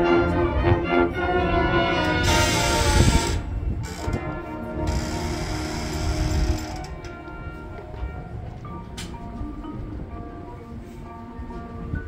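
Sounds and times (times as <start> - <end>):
marching band chords: 0.0 - 3.3
rattling clicking percussion: 4.9 - 7.2.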